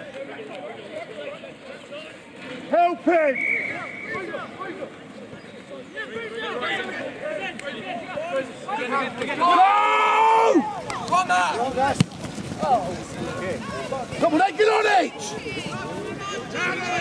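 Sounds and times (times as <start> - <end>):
players and spectators shouting: 1.9 - 17.0.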